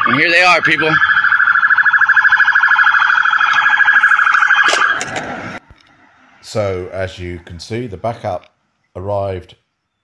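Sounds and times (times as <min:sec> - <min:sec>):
police siren warbling: 0:00.0 - 0:06.9.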